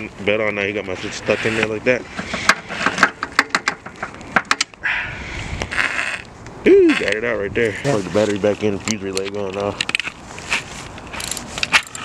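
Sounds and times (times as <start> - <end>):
clicks and knocks in engine bay: 2.2 - 4.7
rustling: 7.8 - 12.0.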